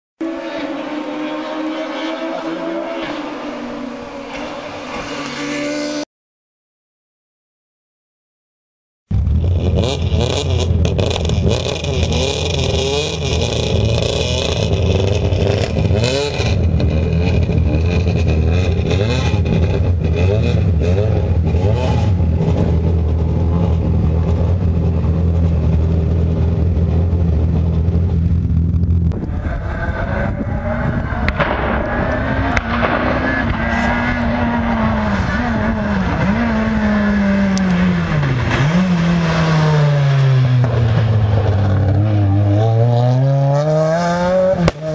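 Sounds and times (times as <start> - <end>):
car driving hard revving: 0.2 - 6.0, 9.2 - 44.9.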